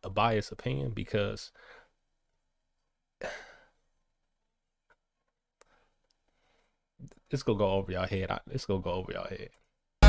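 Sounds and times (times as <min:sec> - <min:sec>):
man sighing: 0:03.2 - 0:03.7.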